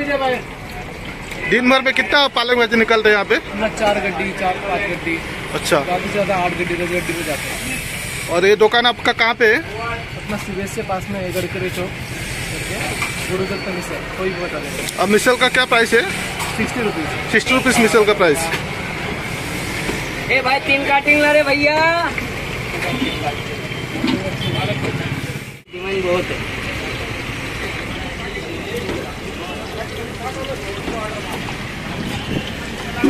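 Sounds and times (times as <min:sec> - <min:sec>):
steady background noise: 0:00.0 - 0:33.0
fritters sizzling in hot oil: 0:10.4 - 0:20.5, 0:26.2 - 0:33.0.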